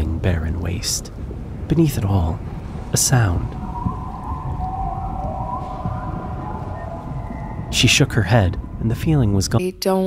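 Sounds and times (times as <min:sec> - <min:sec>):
steady low rumble: 0:00.0 - 0:10.0
eerie wavering held tones: 0:02.6 - 0:09.7.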